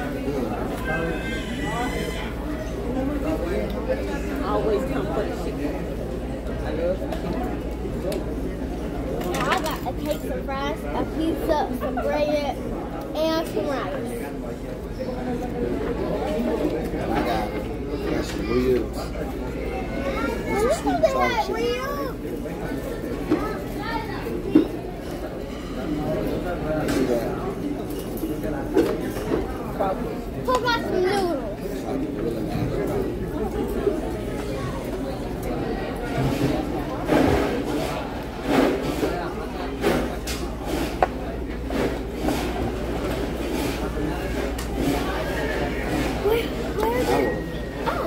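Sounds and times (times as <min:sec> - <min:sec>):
indistinct voices and chatter: 0:00.0 - 0:48.0
people talking: 0:00.0 - 0:48.0.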